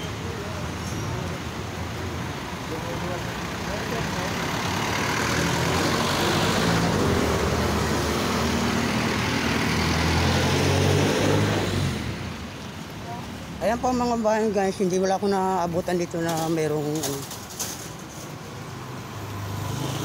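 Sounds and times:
vehicle engine passing: 0:02.7 - 0:12.5, 0:18.7 - 0:20.0.

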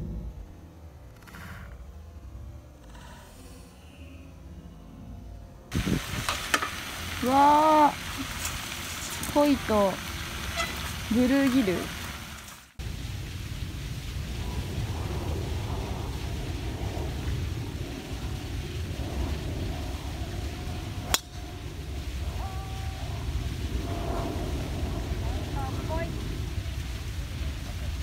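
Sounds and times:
wind rumbling on microphone: 0:05.4 - 0:28.0
golf club striking ball: 0:21.1 - 0:21.4.

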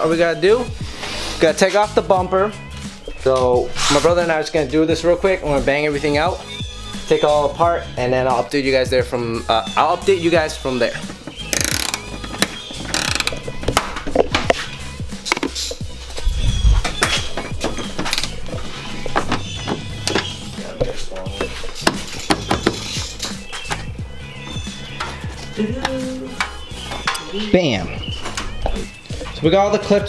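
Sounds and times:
background music: 0:00.0 - 0:30.0
plastic clips prying out: 0:11.4 - 0:14.5
hand ratchet clicking: 0:11.5 - 0:13.5.

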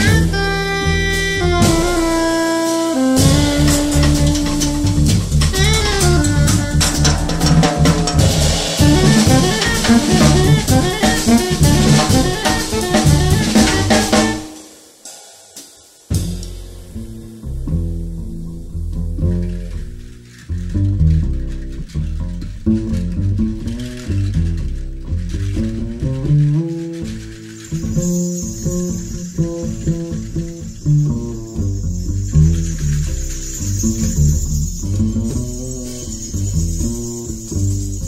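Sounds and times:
plucked double bass walking line: 0:00.0 - 0:14.5, 0:16.2 - 0:38.0
soft drum kit with cymbal wash: 0:00.0 - 0:19.7.

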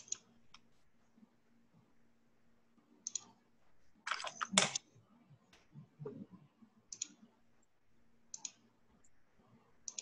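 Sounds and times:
keyboard and mouse clicks: 0:00.0 - 0:00.7, 0:03.0 - 0:03.4, 0:06.9 - 0:07.4, 0:08.3 - 0:08.7.

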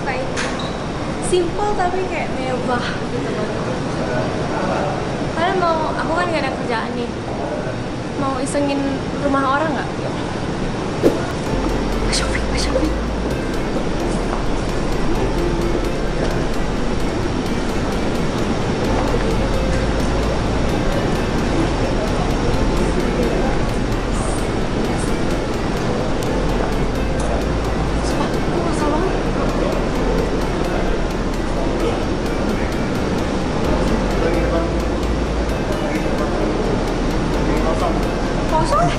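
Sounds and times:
music: 0:11.0 - 0:38.9.

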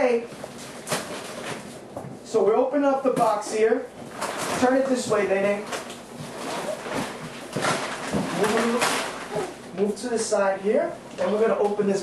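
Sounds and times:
cardboard rustling: 0:04.1 - 0:09.6
cardboard tearing: 0:05.7 - 0:09.5
child babbling: 0:09.3 - 0:09.6.

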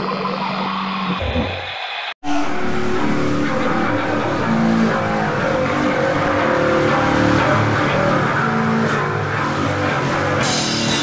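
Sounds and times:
distorted electric guitar and bass: 0:00.0 - 0:11.0.

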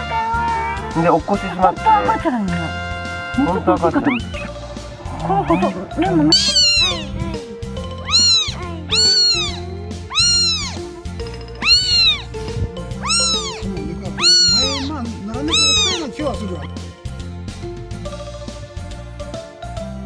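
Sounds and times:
kitten mewing: 0:00.0 - 0:02.2, 0:03.3 - 0:11.0, 0:11.6 - 0:16.2.

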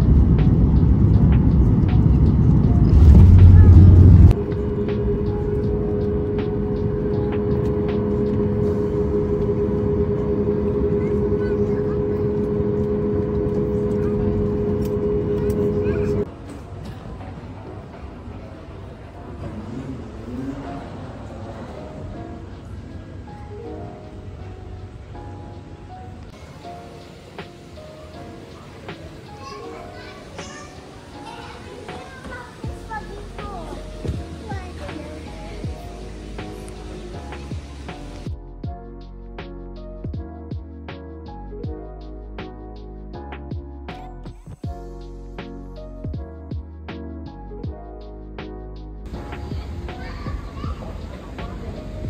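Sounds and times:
airliner cabin drone: 0:00.0 - 0:29.4, 0:30.9 - 0:38.3
hollow terminal background: 0:00.0 - 0:38.4, 0:49.0 - 0:52.0
background music: 0:00.0 - 0:52.0
children chattering and calling out: 0:02.8 - 0:24.7, 0:26.3 - 0:38.2, 0:49.1 - 0:52.0.

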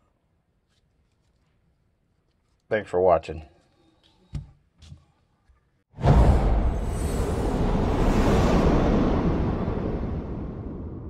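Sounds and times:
deep noisy rumble: 0:06.0 - 0:11.0.

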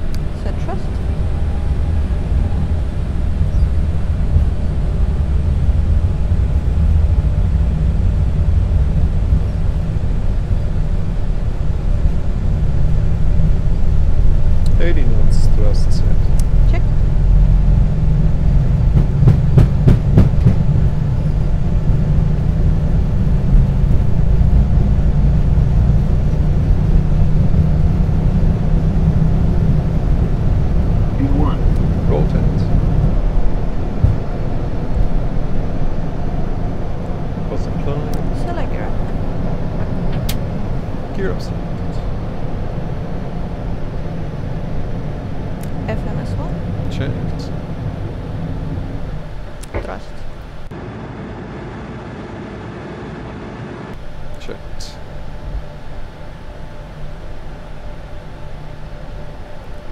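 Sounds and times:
jet engines rumbling: 0:00.0 - 0:59.9
sharp knocks: 0:19.0 - 0:20.7.

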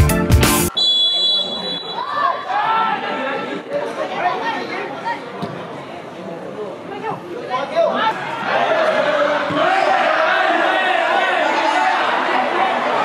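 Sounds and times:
background music: 0:00.0 - 0:00.7
voices chattering and calling out: 0:00.7 - 0:13.0.

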